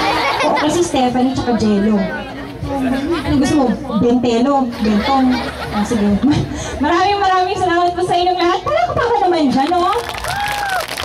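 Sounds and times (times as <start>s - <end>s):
woman talking into a microphone: 0.4s - 10.0s.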